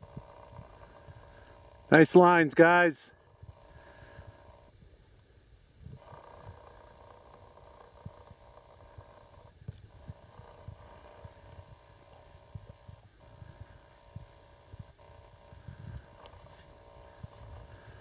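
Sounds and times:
camera hum: 3.1 - 18.0
wind buffeting microphone: 8.0 - 18.0.

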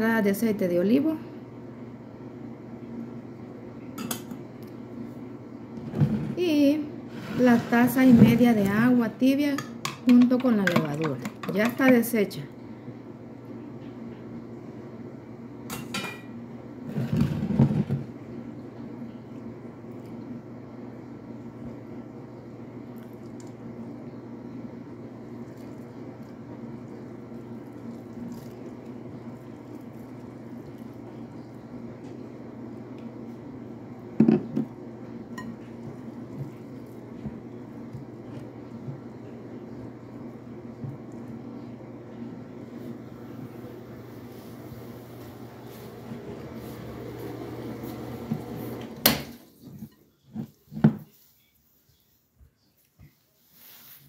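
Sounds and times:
steady low hum: 0.0 - 50.5
hands mixing dough: 6.4 - 12.4, 22.8 - 54.0.

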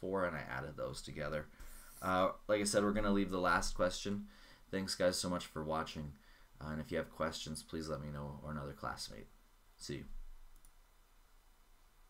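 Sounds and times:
person speaking: 0.0 - 10.2
room hiss: 0.0 - 12.0.

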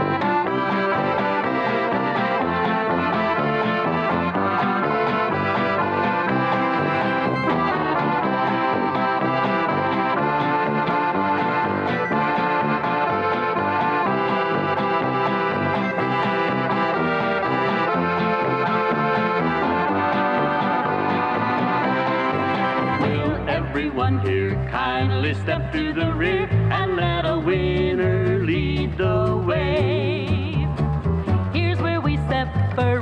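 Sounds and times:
dance band with brass: 0.0 - 23.6
piano accordions playing a tune: 0.0 - 24.4.

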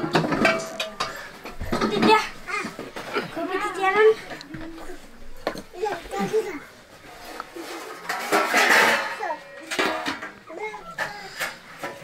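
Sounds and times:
family voices talking: 0.0 - 12.0.

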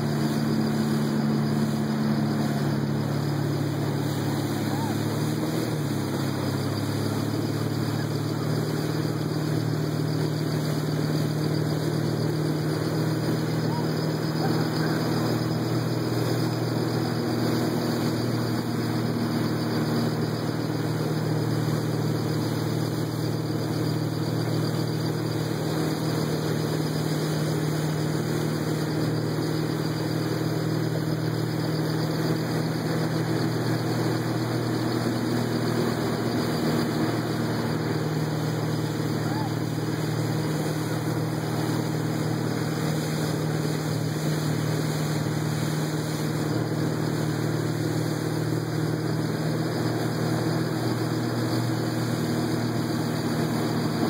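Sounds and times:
motorboat engine drone: 0.0 - 54.0
water rushing along hull: 0.0 - 54.0.

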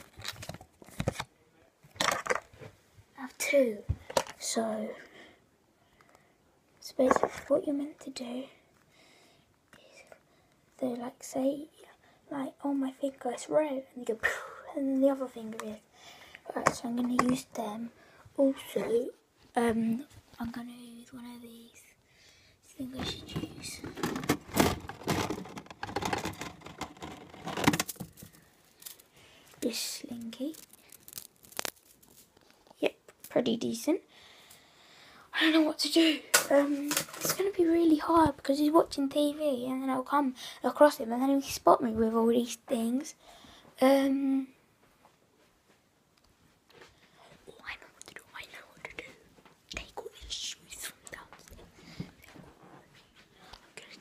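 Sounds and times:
plastic toys clattering: 2.0 - 2.5, 7.0 - 7.5, 23.0 - 32.5, 36.3 - 37.6
child whispering: 9.7 - 10.2, 19.9 - 22.0, 22.7 - 24.2, 47.2 - 51.6, 53.4 - 54.0.

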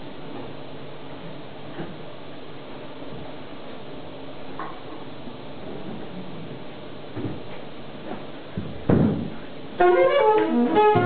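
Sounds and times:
dull thump: 8.6 - 9.4
jazz saxophone: 9.8 - 11.0.

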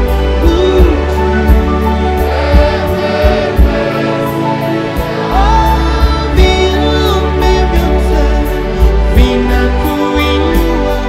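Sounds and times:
band with drums and cymbals: 0.0 - 11.0
congregation and choir singing: 0.0 - 11.0.

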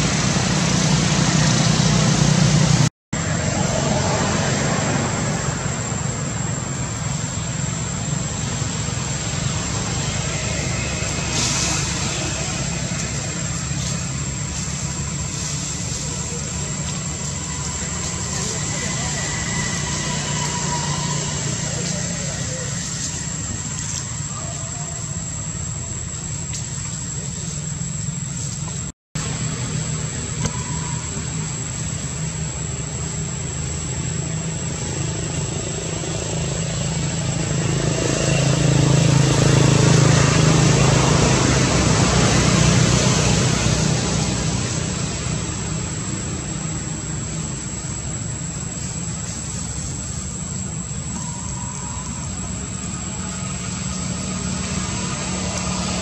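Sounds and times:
high-pitched whine: 0.0 - 56.0
vehicle engine and road noise: 0.0 - 56.0.

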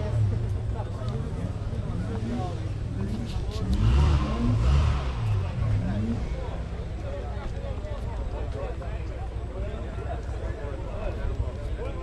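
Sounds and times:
rally car engine revving: 0.0 - 6.9
spectators talking: 0.0 - 12.0.

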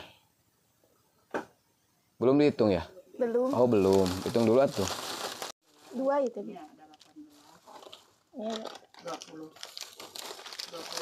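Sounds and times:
plastic wrappers crinkling: 3.4 - 11.0.

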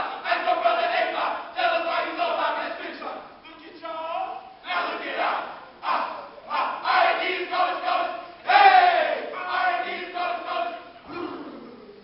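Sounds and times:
men shouting a chant: 0.0 - 3.3, 4.6 - 11.4
crowd noise: 0.0 - 3.4, 4.7 - 12.0.

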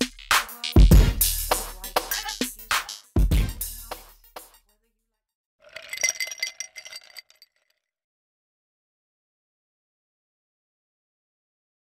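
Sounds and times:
glassware clinking: 5.7 - 7.6.

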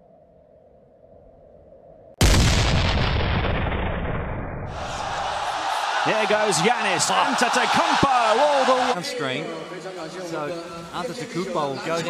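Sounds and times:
cinematic boom: 2.2 - 4.8
basketball arena noise: 4.7 - 12.0.

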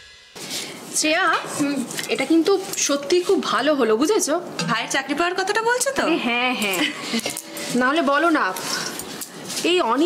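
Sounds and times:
woman talking: 1.0 - 10.0
metal containers clinking: 6.7 - 9.5.

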